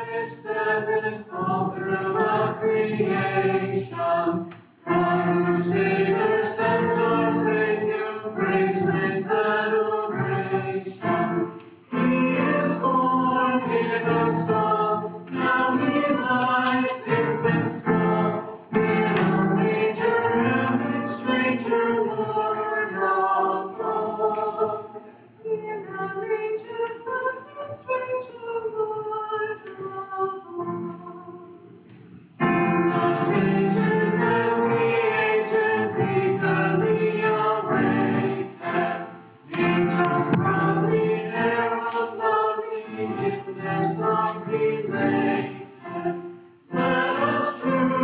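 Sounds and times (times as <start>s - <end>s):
group singing together: 0.0s - 31.7s, 32.4s - 48.0s.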